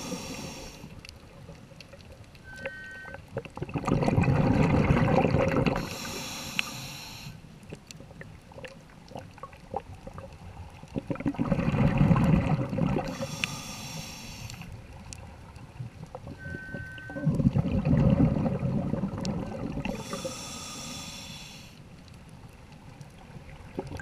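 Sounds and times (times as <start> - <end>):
hissing regulator inhalation: 0.0 - 0.9, 5.8 - 7.4, 13.0 - 14.7, 19.9 - 21.8.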